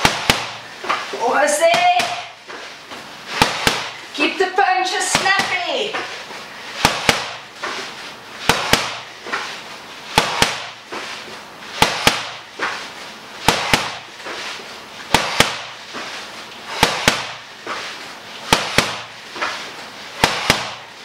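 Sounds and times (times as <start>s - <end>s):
boxing gloves smacking pad: 0.0s - 1.0s, 1.7s - 2.4s, 3.3s - 4.0s, 5.1s - 5.7s, 6.8s - 7.5s, 8.4s - 9.5s, 10.1s - 11.0s, 11.8s - 12.8s, 13.4s - 14.1s, 15.1s - 15.8s, 16.7s - 17.5s, 18.4s - 21.0s.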